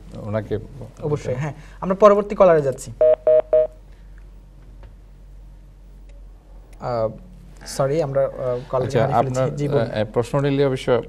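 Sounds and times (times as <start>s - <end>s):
electronic telephone beeps: 3.0s - 3.7s
faint phone line hum: 3.0s - 3.8s.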